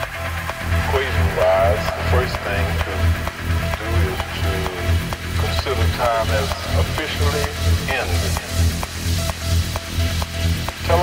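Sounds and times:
hissy hi-hats: 0.0 - 11.0
repeating synth blip: 0.0 - 11.0
vocal sample: 0.8 - 10.2.

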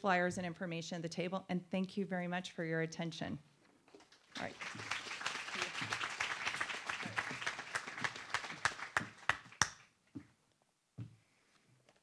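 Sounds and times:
audience applauding: 4.3 - 9.9.

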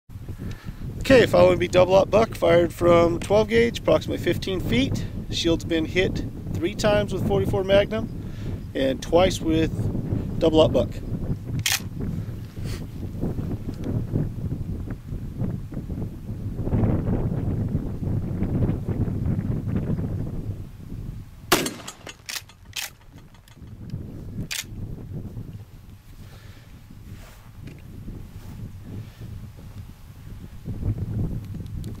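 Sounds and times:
wind rumbling on microphone: 0.1 - 32.0
shotgun firing: 21.5 - 23.0.

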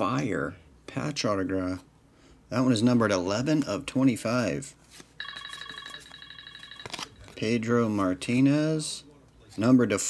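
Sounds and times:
electronic telephone ring: 5.2 - 7.3.

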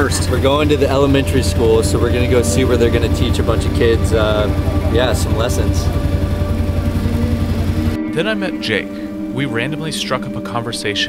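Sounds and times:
auto-rickshaw engine throbbing: 0.0 - 9.2.

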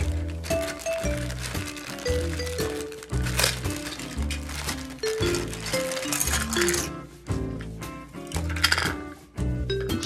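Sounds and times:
background music with steady beat: 0.0 - 10.0
plastic toy parts clattering on wood: 3.2 - 6.9.

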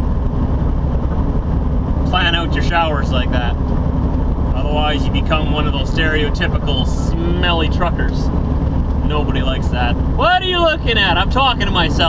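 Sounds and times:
road noise: 0.0 - 12.0
truck engine drone: 0.0 - 12.0.

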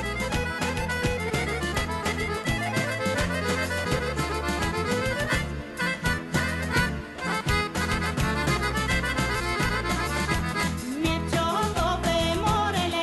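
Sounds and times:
instrumental folk band playing: 0.0 - 13.0.

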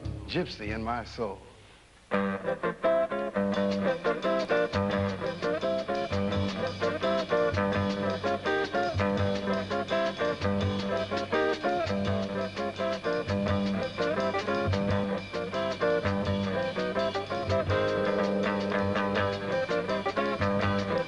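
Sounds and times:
drum kit: 0.0 - 1.3, 2.4 - 21.0
upright bass: 0.0 - 21.0
electric guitar single-note lines: 2.1 - 21.0.

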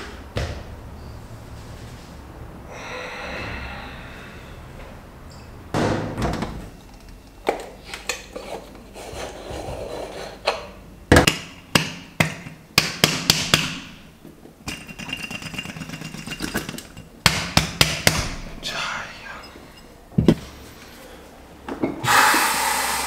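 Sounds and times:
metal pot parts clattering: 14.6 - 17.1.

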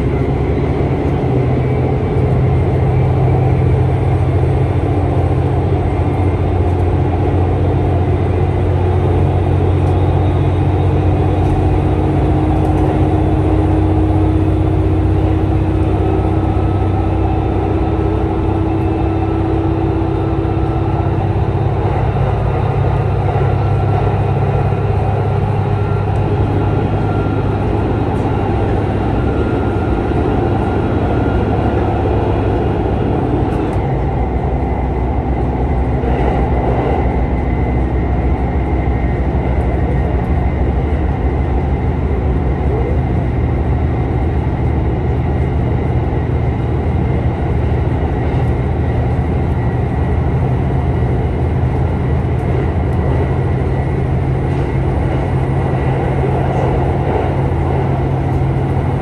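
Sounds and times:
railcar engine drone: 0.0 - 59.0
wheels rumbling on rail: 0.0 - 59.0.

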